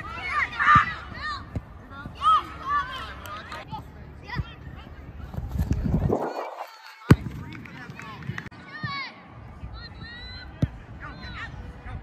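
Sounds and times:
wind rumbling on microphone: 0:05.0 - 0:08.5
soccer ball kicked: 0:07.0 - 0:09.1.

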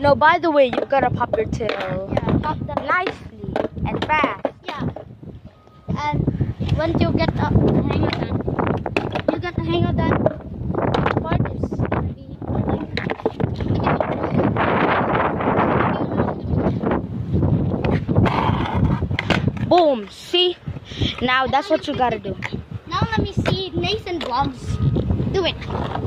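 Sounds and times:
skateboard wheels rolling on concrete: 0:00.0 - 0:05.1, 0:06.6 - 0:16.0, 0:16.6 - 0:26.0
voices: 0:00.0 - 0:16.9, 0:18.2 - 0:26.0.

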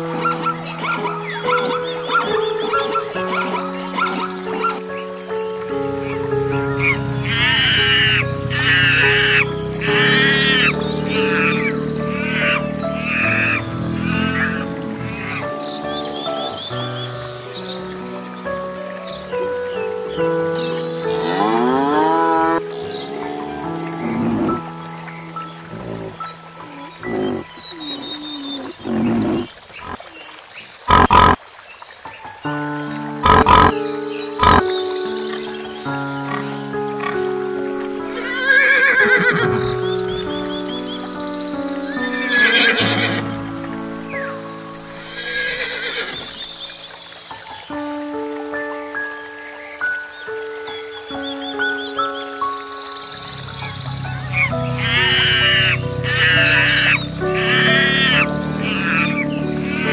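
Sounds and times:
animal calls: 0:00.0 - 0:17.2, 0:21.1 - 0:31.4, 0:33.1 - 0:37.2, 0:38.1 - 0:41.2, 0:41.9 - 0:46.6, 0:53.2 - 0:59.9
background music: 0:00.0 - 0:29.5, 0:32.4 - 0:59.9
horse whinnying: 0:21.2 - 0:24.7, 0:25.7 - 0:30.0, 0:38.2 - 0:39.7, 0:42.1 - 0:43.3, 0:45.0 - 0:46.5, 0:54.4 - 0:59.9.

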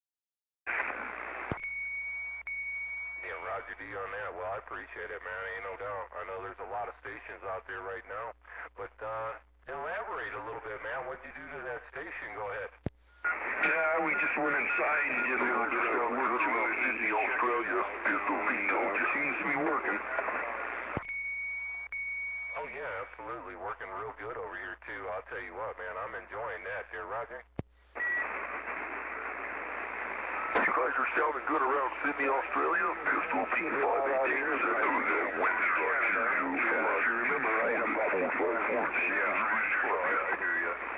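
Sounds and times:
radio static hiss: 0:00.7 - 0:01.6, 0:03.2 - 0:21.0, 0:22.6 - 0:40.9
radio click: 0:00.7 - 0:01.7, 0:12.8 - 0:21.1, 0:27.5 - 0:40.9
voice over radio: 0:03.2 - 0:20.9, 0:22.6 - 0:27.5, 0:30.3 - 0:40.9.

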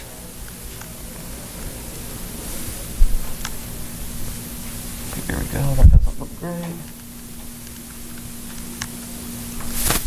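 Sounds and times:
line hiss and hum: 0:00.0 - 0:10.0.

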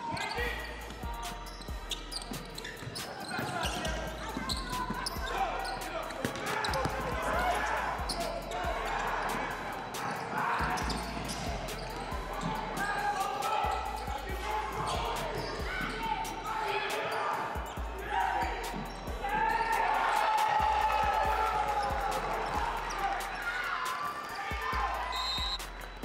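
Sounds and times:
players and spectators shouting: 0:00.0 - 0:26.0.

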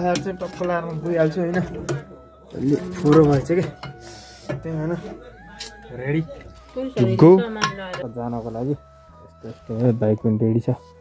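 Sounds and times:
man speaking: 0:00.0 - 0:03.8, 0:08.0 - 0:10.9.

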